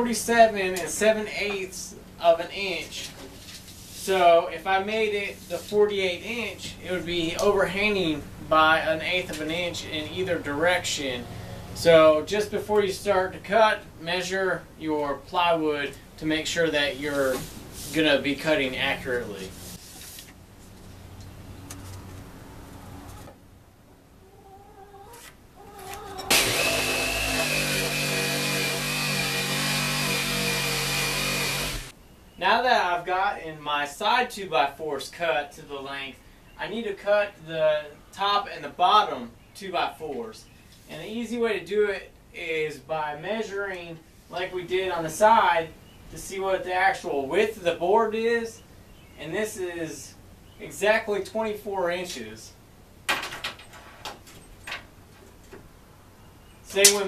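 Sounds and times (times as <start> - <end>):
tape measure scraping on plywood: 25.1 - 26.0
electric jigsaw cutting wood: 26.3 - 31.9.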